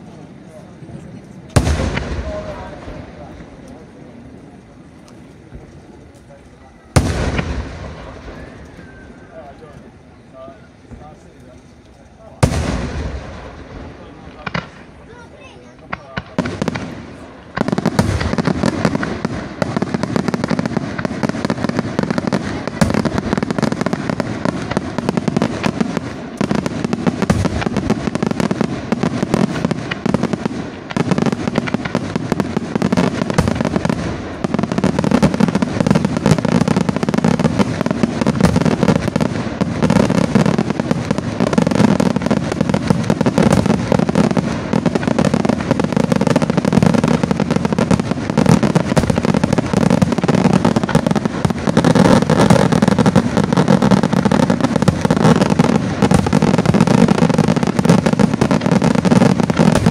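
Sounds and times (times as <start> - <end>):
firework shells bursting: 4.6 - 10.0, 15.7 - 59.9.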